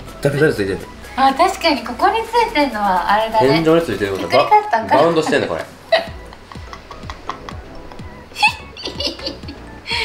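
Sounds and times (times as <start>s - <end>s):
background music: 0.0s - 10.0s
high-pitched giggling: 5.9s - 9.6s.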